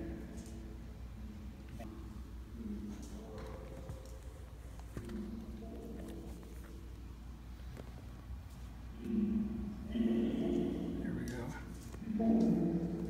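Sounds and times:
low electrical hum: 0.0s - 13.0s.

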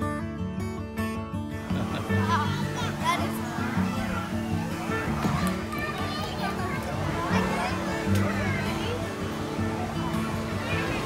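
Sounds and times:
background music: 0.0s - 11.0s
children's voices at play: 1.7s - 11.0s.

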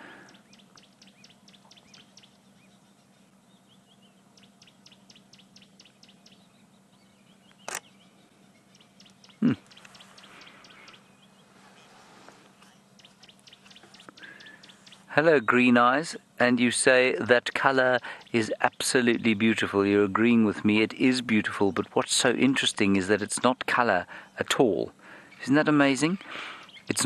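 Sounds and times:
bird ticking calls: 0.0s - 11.9s, 12.5s - 27.0s.

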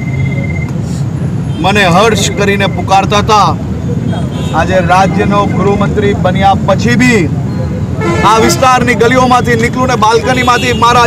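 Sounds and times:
street noise rumble: 0.0s - 11.0s
man speaking: 1.6s - 7.4s, 8.1s - 11.0s.

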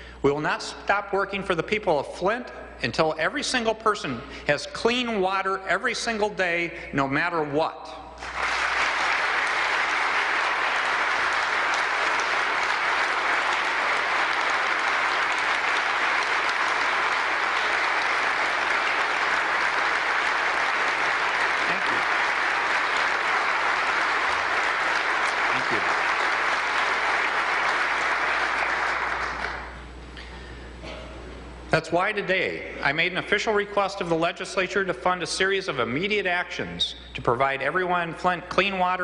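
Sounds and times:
large audience applauding: 8.2s - 29.9s.

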